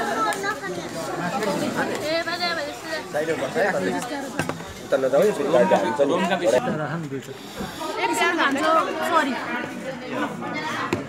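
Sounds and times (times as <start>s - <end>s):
people talking at a table: 0.0s - 11.0s.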